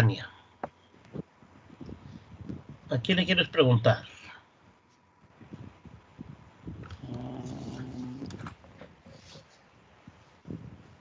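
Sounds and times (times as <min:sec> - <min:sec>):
low steady voice humming: 0:06.6 - 0:08.5.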